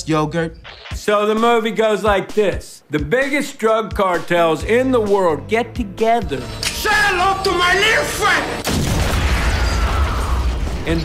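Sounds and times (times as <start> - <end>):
crackling debris: 8.6 - 11.0
explosion with deep rumble: 8.7 - 11.0.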